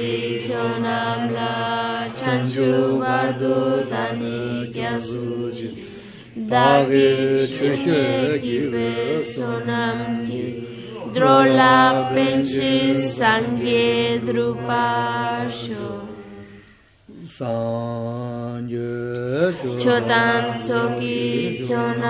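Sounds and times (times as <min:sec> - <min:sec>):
voices chanting in unison: 0:00.0 - 0:22.0.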